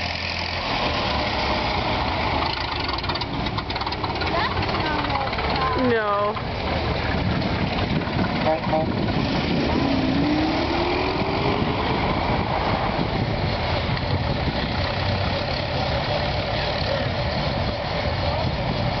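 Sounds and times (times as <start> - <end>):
car pulling away: 0.0 - 19.0
old car engines running: 0.0 - 19.0.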